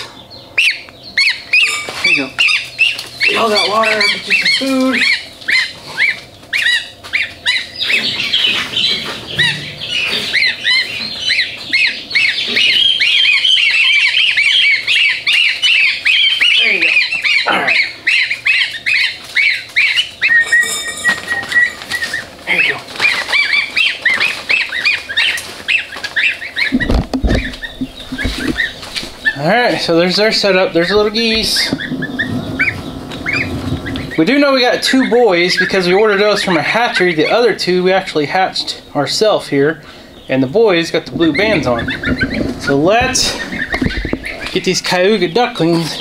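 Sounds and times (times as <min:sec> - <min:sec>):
goslings and ducklings peeping: 0:00.0 - 0:46.0
low bumps from handling: 0:26.7 - 0:29.4, 0:41.1 - 0:44.6.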